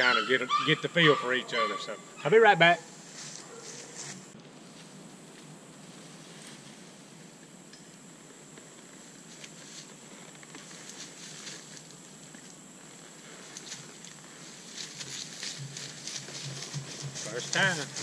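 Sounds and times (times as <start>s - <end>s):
faint outdoor hiss: 0.0s - 18.0s
footsteps in tall grass: 3.0s - 7.2s, 8.9s - 12.0s, 13.0s - 18.0s.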